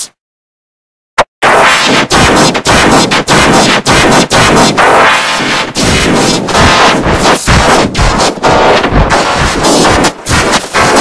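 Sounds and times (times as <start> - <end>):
harsh overdriven distorted music: 1.4 - 11.0.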